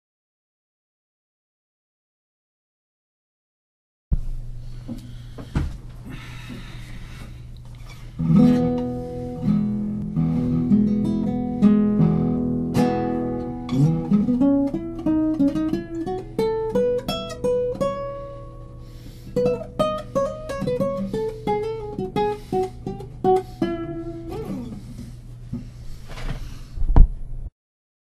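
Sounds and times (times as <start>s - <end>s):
plucked guitar notes: 8.2s - 24.9s
acoustic guitar chords: 8.2s - 25.0s
thump: 26.1s - 27.2s.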